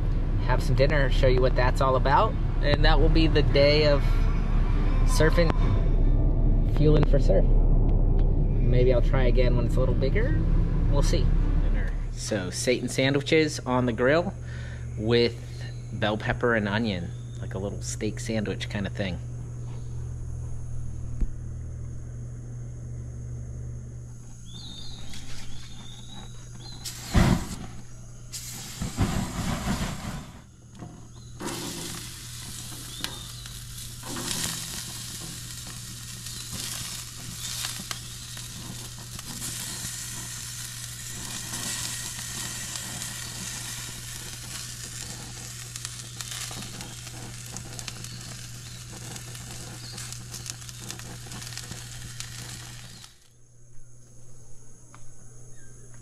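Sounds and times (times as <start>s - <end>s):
vegetables sizzling on a grill: 24.4s - 53.3s.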